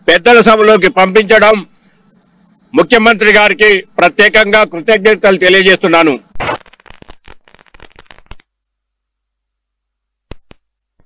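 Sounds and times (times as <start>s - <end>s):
firecrackers cracking: 6.4s - 8.5s, 10.3s - 10.6s.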